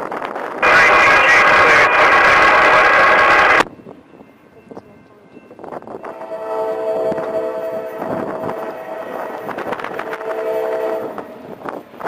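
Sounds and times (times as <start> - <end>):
radio static burst: 0.6 - 3.6.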